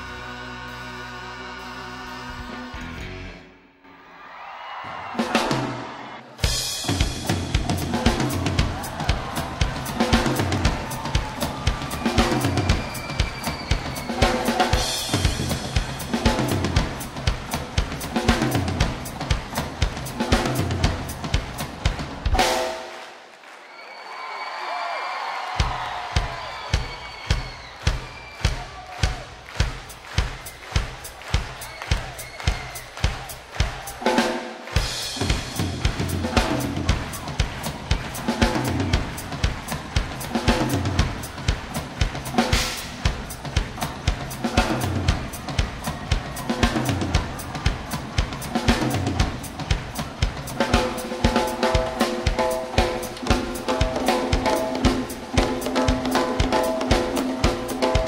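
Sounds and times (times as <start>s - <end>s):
rock drum kit solo: 5.0s - 22.9s, 25.4s - 58.0s
steady bass drum beat: 6.4s - 22.6s, 25.6s - 58.0s.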